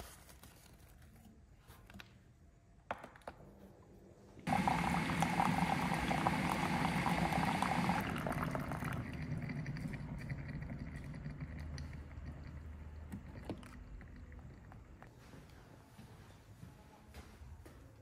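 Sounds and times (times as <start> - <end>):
hot water pouring into mug: 4.5 - 15.0
water dripping: 4.5 - 15.1.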